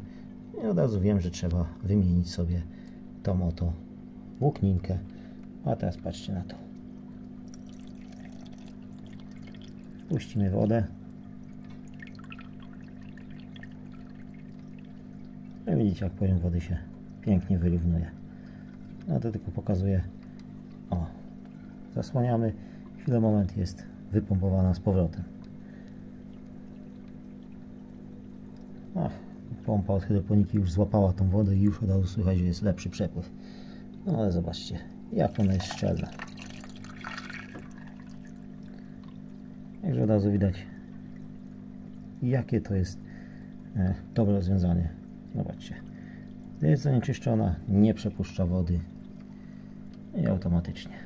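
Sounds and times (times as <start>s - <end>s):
steady low hum: 0.0s - 51.0s
water trickling and splashing: 4.4s - 51.0s
water splash: 35.2s - 38.4s.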